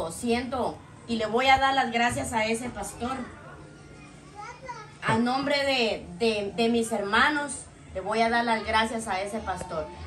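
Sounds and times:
woman speaking: 0.0s - 3.4s, 5.0s - 10.0s
faint background voices: 0.8s - 10.0s.

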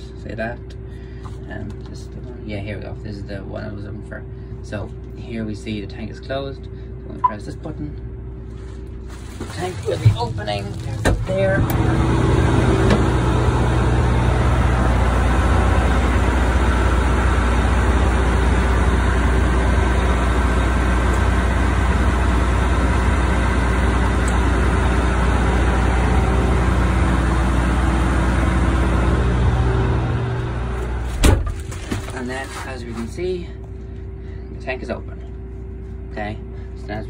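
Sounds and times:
combine machine hum: 0.0s - 37.0s.

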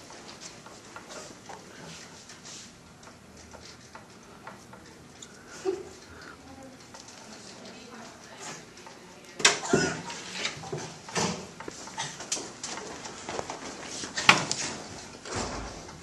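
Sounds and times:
indistinct voices: 4.2s - 10.0s.

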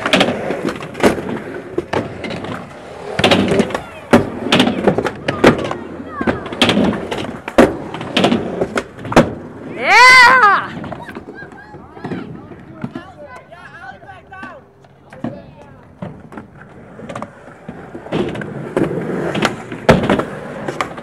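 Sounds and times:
skateboard clacking on ground: 0.0s - 21.0s
skateboard wheels rolling on concrete: 0.0s - 21.0s.

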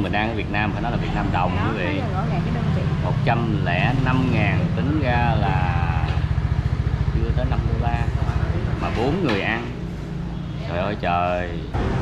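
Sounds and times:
motor scooter engine passing: 0.0s - 11.0s.

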